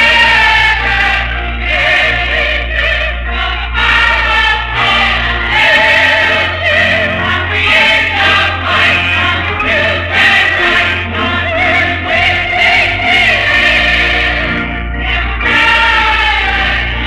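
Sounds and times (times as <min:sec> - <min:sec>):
church choir singing: 0:00.0 - 0:17.0.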